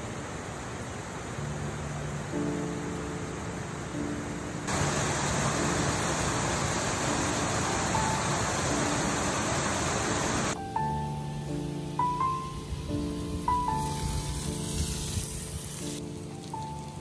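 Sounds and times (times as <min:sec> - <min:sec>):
stream rushing over rocks: 0:00.0 - 0:04.0, 0:04.6 - 0:10.6
soft slow background music: 0:00.2 - 0:17.0.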